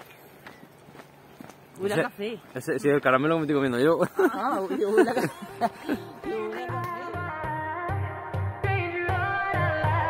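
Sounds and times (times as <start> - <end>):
footsteps on paved road: 0.0 - 6.0.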